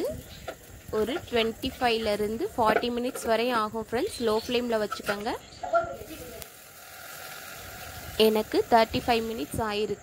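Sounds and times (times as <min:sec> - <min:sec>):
gas burner hissing: 0:05.9 - 0:10.0.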